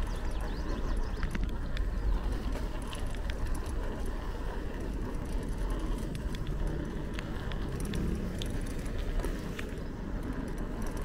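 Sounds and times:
bicycle clicks and rattles: 0.0 - 11.0
wind buffeting microphone: 0.0 - 11.0.

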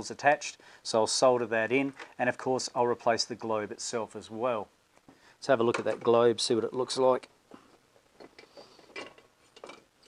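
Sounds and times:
faint clicks and scrapes: 7.5 - 10.0.

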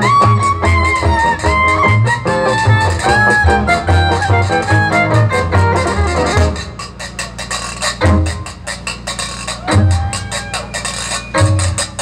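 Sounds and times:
violin melody: 0.0 - 6.7
jazz band playing: 0.0 - 12.0.

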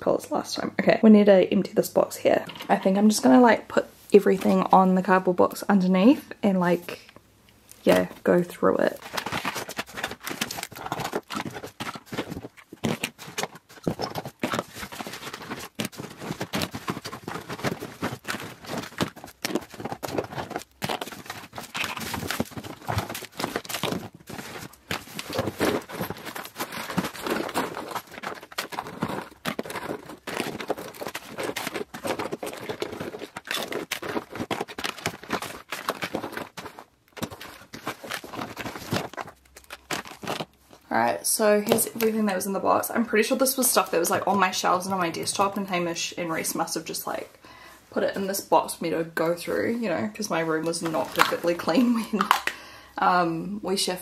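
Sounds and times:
packaging clattering and crinkling: 8.8 - 42.2, 50.6 - 52.6.

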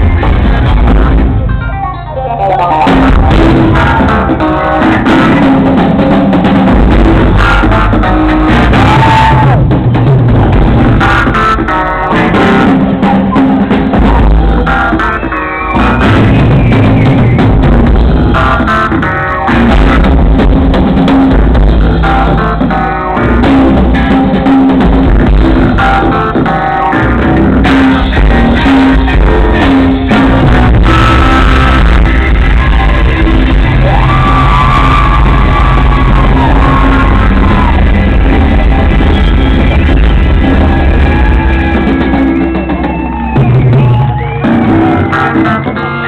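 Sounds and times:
drums: 0.0 - 46.0
electric guitar: 0.0 - 46.0
funk band playing: 0.0 - 46.0
keyboards: 0.0 - 46.0.

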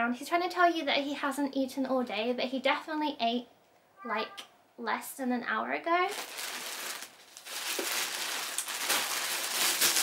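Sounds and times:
plastic bag crinkling: 6.0 - 10.0.

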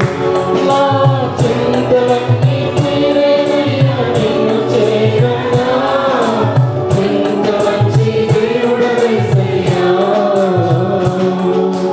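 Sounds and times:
choir singing worship song: 0.0 - 11.9
electronic keyboard: 0.0 - 11.9
steady beat: 0.0 - 11.9.

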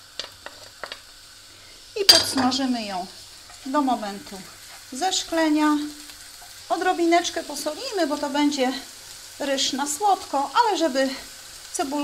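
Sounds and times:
onion sizzling in hot oil: 0.0 - 12.0.

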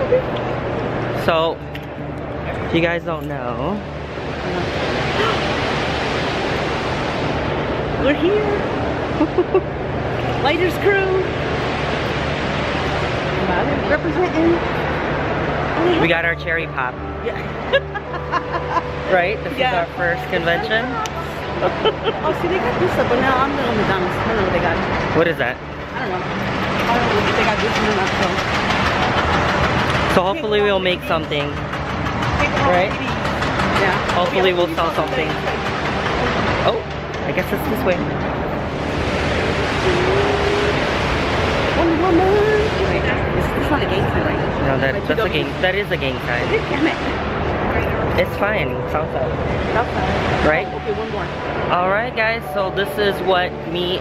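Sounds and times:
busy indoor hall noise: 0.0 - 54.0.

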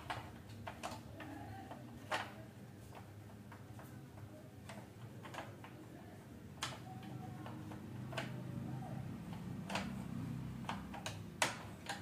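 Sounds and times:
plastic parts clicking: 0.0 - 12.0.

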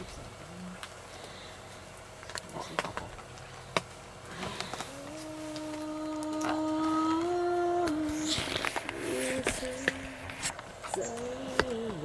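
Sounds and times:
dog howling: 4.7 - 12.0.

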